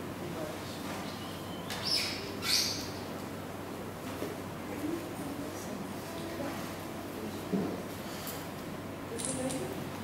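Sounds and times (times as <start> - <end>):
bird chirping: 1.0 - 3.0.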